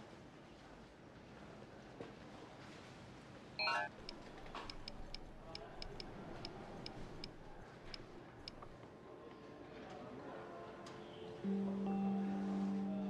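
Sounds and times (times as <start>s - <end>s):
touchscreen keyboard clicks: 3.6s - 8.8s.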